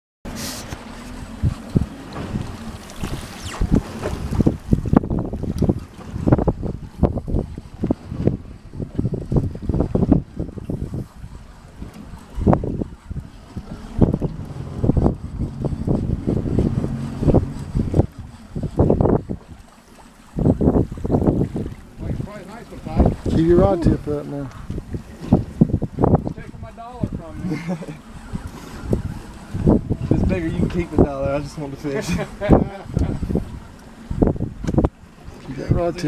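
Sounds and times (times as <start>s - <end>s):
water washing around a boat: 0.3s - 36.0s
wind buffeting the microphone: 0.3s - 36.0s.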